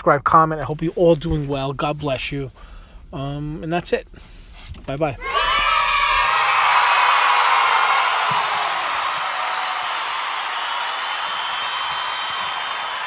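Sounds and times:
crowd cheering and applause: 0:05.2 - 0:13.0.

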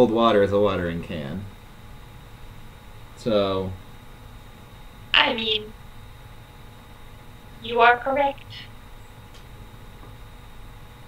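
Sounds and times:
room tone hum and hiss: 0:00.0 - 0:11.0.

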